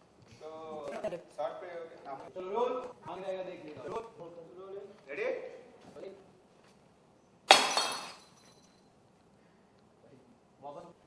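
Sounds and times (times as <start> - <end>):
ceramic vase smashing on tiles: 7.5 - 8.8
shards clattering: 7.5 - 8.8.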